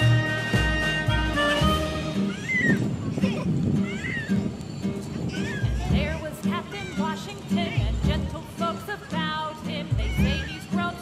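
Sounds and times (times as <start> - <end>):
background music: 0.0 - 2.4
child squealing: 2.1 - 4.6, 5.2 - 7.3, 10.0 - 10.7.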